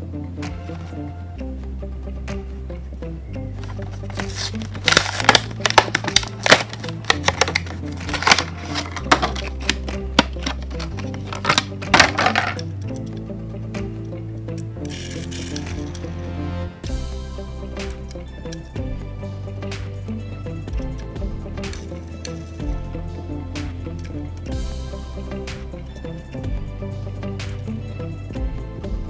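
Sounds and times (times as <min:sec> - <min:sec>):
background music with bass line: 0:00.0 - 0:29.0
plastic packaging crackling: 0:03.6 - 0:12.6, 0:14.9 - 0:16.0.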